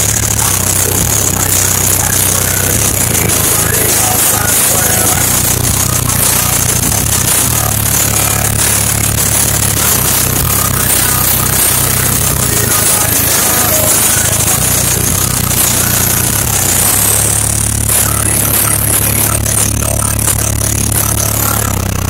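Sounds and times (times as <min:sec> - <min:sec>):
loud distorted bass music: 0:00.0 - 0:22.0.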